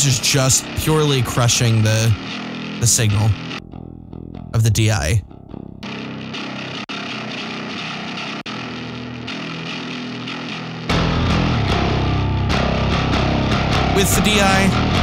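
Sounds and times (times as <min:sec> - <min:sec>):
distorted metal bass: 0:00.0 - 0:07.3, 0:10.9 - 0:15.0
fuller deep bass: 0:02.8 - 0:05.8, 0:10.9 - 0:15.0.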